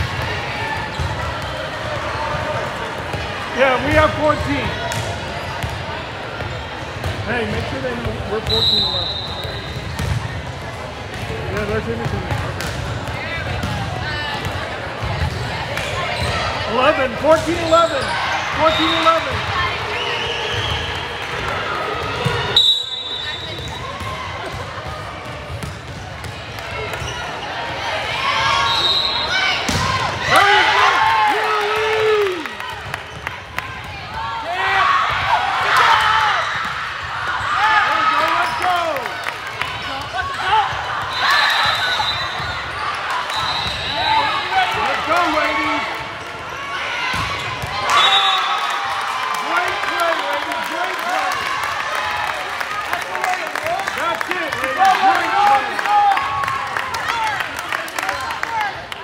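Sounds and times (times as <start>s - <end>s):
players calling: 11.3s - 24.8s, 26.5s - 59.0s
spectators shouting: 26.8s - 33.0s, 39.6s - 57.6s.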